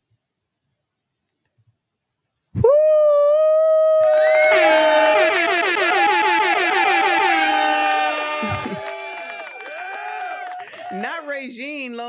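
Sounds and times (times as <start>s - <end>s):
held horn-like tone: 4.4s - 8.9s.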